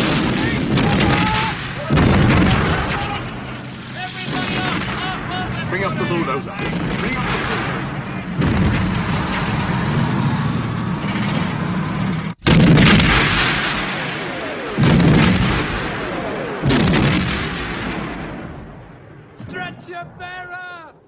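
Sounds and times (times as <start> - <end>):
gunfire and artillery: 0.0 - 21.0
heavy blasts: 0.0 - 21.0.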